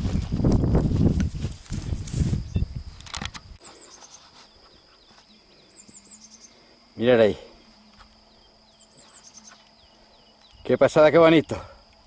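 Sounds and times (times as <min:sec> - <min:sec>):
handling noise on microphone: 0:00.0 - 0:04.5
faint bird chirps: 0:03.6 - 0:11.6.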